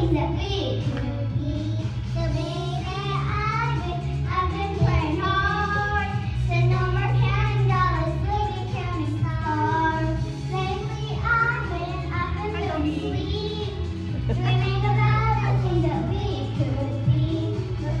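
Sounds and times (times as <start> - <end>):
girl singing into a microphone: 0.0 - 18.0
recorded backing music with bass: 0.0 - 18.0.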